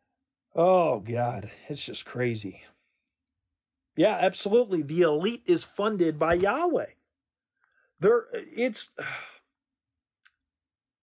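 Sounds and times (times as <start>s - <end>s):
man sighing: 9.0s - 9.4s.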